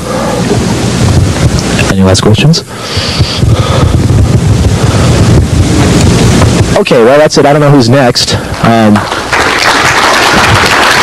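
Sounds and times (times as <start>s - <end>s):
rough rumble on microphone: 2.8s - 7.0s.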